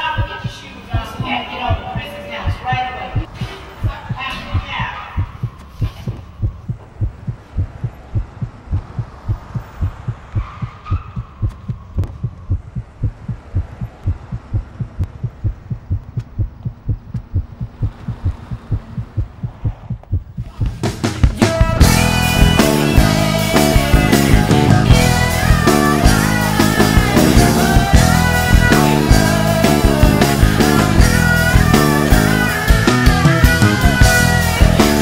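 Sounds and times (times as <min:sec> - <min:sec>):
heartbeat thumps: 0:00.0 - 0:22.6.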